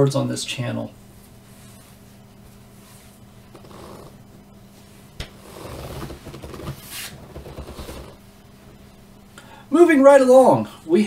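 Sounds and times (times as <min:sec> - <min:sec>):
faint steady hum: 0:00.0 - 0:11.0
clothes rustling: 0:01.0 - 0:08.2.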